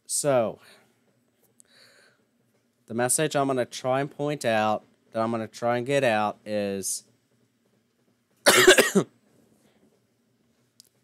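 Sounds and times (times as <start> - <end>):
man coughing: 8.4 - 9.1.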